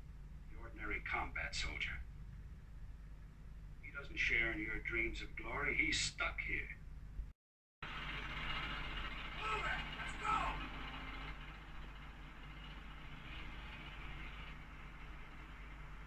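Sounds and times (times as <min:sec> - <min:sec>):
rumble and hiss: 0:00.0 - 0:07.3, 0:07.9 - 0:16.0.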